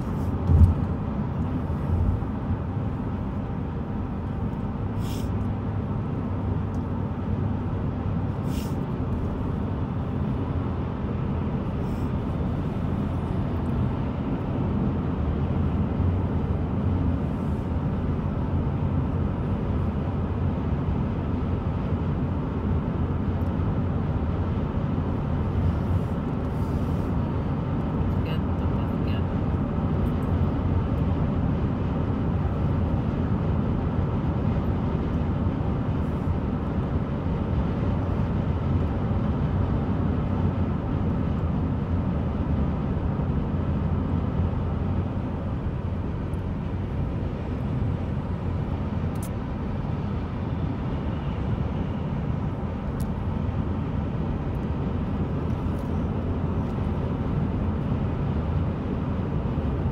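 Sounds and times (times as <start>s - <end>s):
road and engine noise in car: 0.0s - 59.9s.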